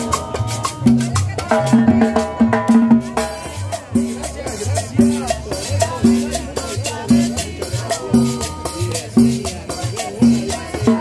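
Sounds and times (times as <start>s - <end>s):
conga drum: 0.0s - 11.0s
salsa band playing: 0.0s - 11.0s
upright bass line: 0.0s - 11.0s.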